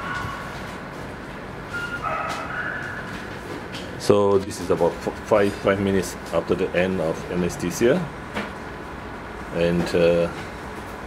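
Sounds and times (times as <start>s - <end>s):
dog whining: 0.0s - 0.7s, 1.8s - 3.3s.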